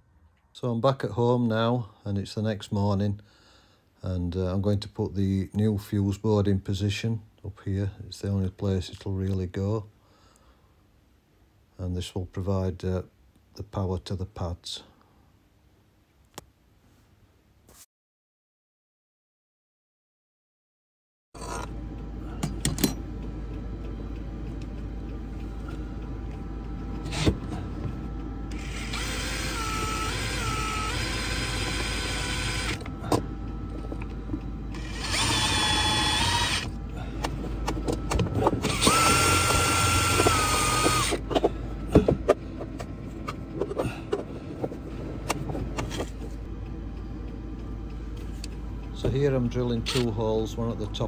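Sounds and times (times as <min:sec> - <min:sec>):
cordless drill motor whine: 0:25.6 - 0:42.0.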